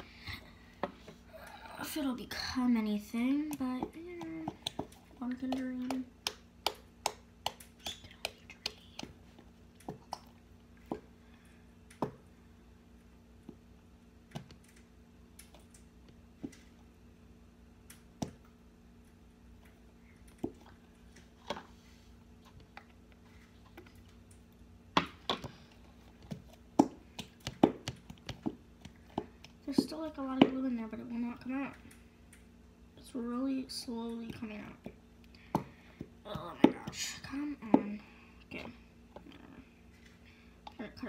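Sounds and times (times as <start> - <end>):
faint hum: 0.0 - 41.0.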